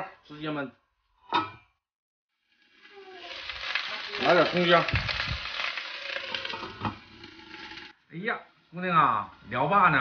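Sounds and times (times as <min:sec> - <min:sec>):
clams sizzling in a wok: 0:02.3 - 0:08.0.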